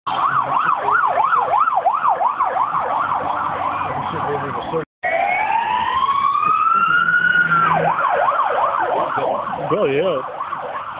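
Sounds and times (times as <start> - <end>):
police siren yelping: 0.1 - 10.9.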